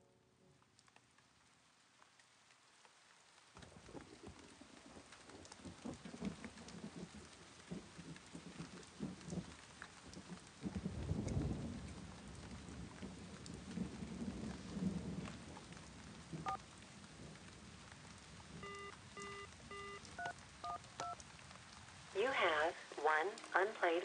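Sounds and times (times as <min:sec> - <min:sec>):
steady rain: 0:00.0 - 0:24.0
low rumble of thunder: 0:03.7 - 0:20.8
phone keypad beeps: 0:18.6 - 0:21.2.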